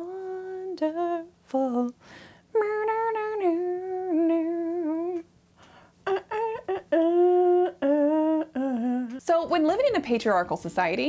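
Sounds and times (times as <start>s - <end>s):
woman humming: 2.6s - 5.2s, 6.0s - 9.2s.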